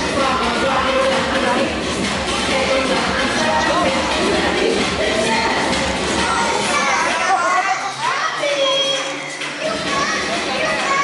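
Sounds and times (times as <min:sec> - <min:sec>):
children shouting and squealing: 0:06.2 - 0:11.0.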